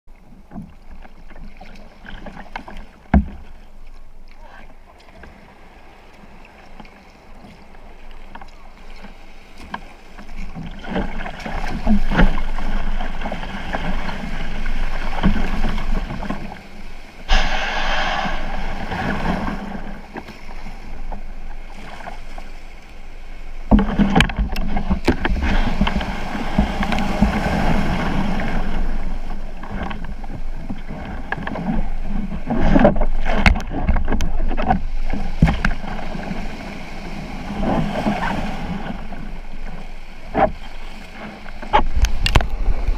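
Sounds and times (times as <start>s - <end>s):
surf splashing against kayak hull: 0.1s - 42.9s
knocks on hull: 3.1s - 3.5s, 23.7s - 27.7s.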